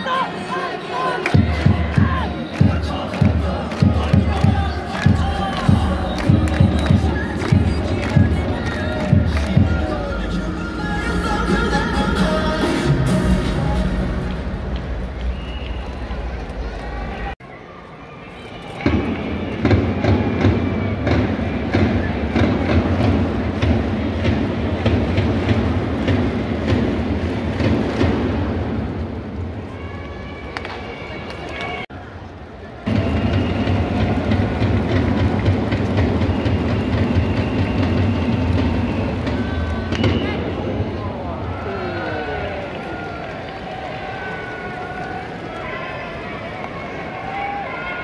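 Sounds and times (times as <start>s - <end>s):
crowd chanting in unison: 0.0s - 14.1s
drum beat: 1.4s - 10.4s, 32.9s - 39.6s.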